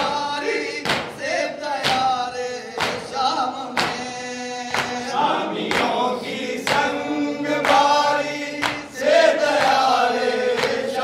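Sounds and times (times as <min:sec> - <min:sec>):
men chanting in chorus: 0:00.0 - 0:11.0
rhythmic chest-beating slaps: 0:00.0 - 0:11.0.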